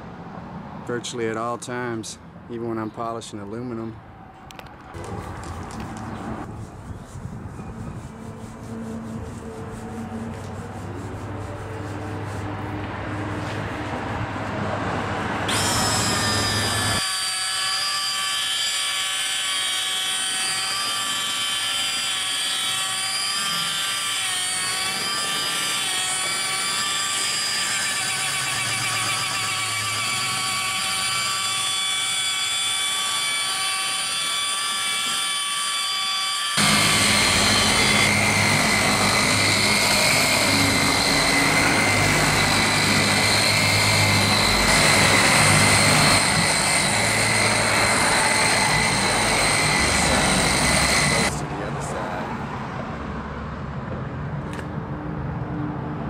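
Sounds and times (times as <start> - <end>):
rotary polisher motor whine: 15.5 - 51.4.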